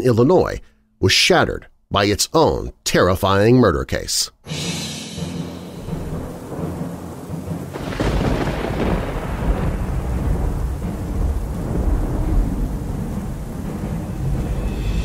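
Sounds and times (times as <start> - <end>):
steady rain: 5.2 - 15.0
thunder crack and rumble: 5.7 - 15.0.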